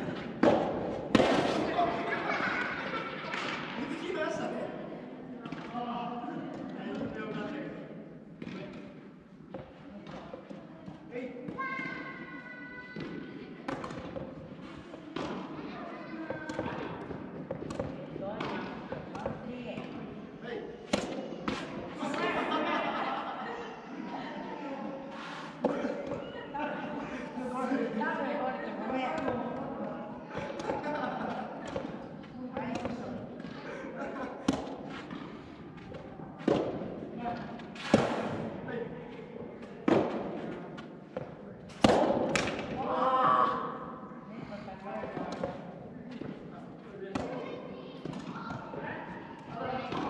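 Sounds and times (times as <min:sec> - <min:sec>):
rackets hitting tennis ball: 0:00.0 - 0:03.8, 0:08.4 - 0:12.0, 0:13.0 - 0:15.6, 0:16.2 - 0:20.2, 0:20.8 - 0:22.3, 0:29.0 - 0:29.7, 0:30.3 - 0:42.9, 0:45.0 - 0:47.4, 0:48.0 - 0:50.0.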